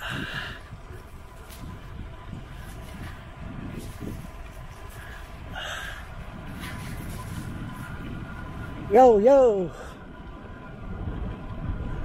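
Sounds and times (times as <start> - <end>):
tyre noise on pavement: 0.0 - 8.9
wind buffeting microphone: 0.0 - 12.0.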